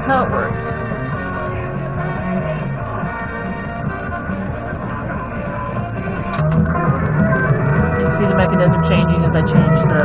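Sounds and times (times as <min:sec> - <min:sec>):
rock music with guitar: 0:00.0 - 0:10.0.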